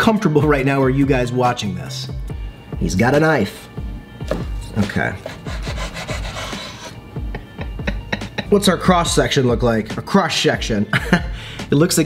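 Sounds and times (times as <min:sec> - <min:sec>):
knife sawing through bread: 0:04.6 - 0:07.0.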